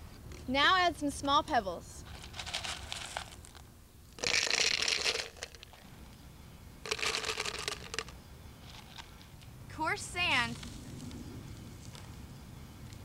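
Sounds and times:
pebbles rattling in plastic bottle: 2.1 - 3.6, 4.2 - 5.8, 6.8 - 9.0.

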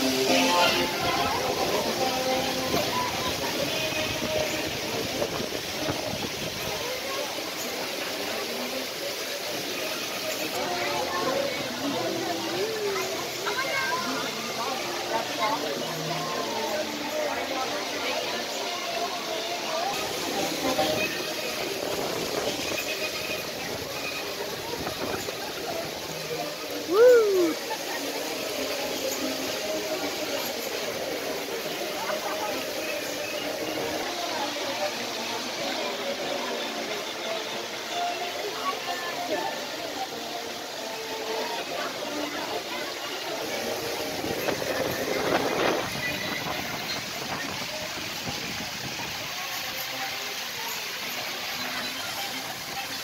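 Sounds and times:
faint crowd voices: 0.0 - 53.0
ride background noise: 0.0 - 53.0.

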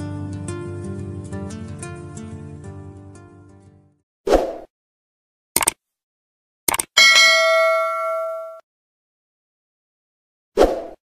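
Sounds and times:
notification bell ding: 7.0 - 8.6.

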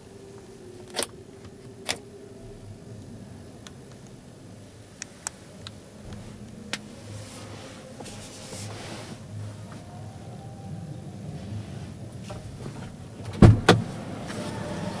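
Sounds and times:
hall background hum: 0.0 - 15.0.

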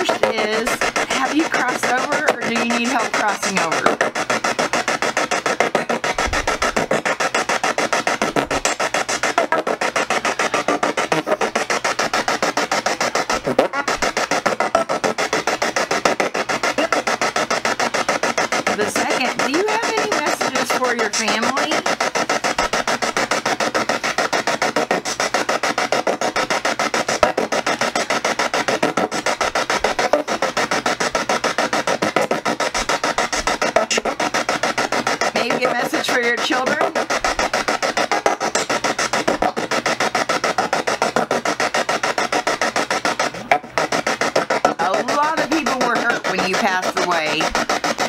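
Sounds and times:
radio static chopping: 0.0 - 48.0.

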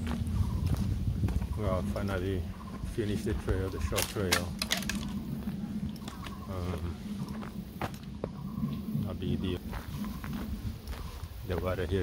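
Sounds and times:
footsteps on dirt trail: 0.0 - 8.9, 9.5 - 12.0.

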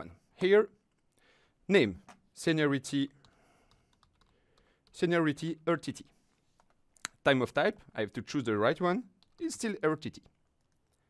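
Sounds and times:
typing on computer keyboard: 3.2 - 5.0.

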